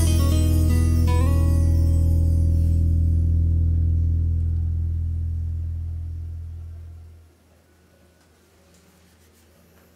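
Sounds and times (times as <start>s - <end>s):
sustained low chord: 0.0s - 7.3s.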